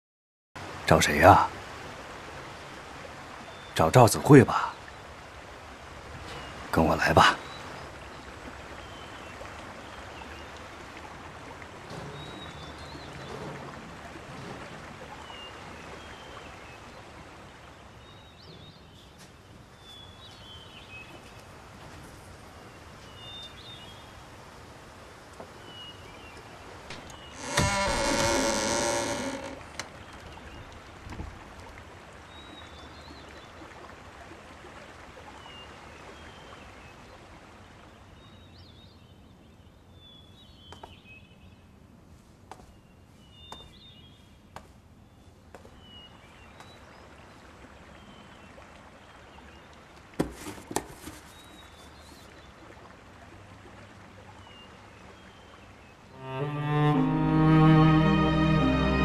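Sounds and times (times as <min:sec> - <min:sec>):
loud steady-pitch call: 0:56.2 - 0:59.0.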